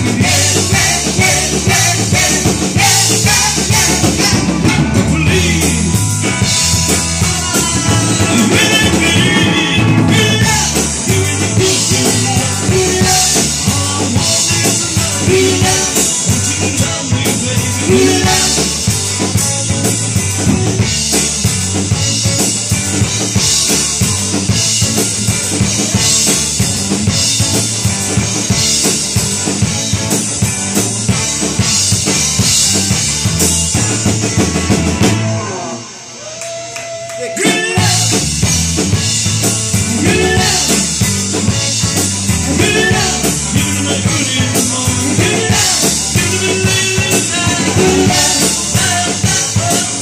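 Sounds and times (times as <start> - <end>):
rock band playing: 0.0 - 50.0.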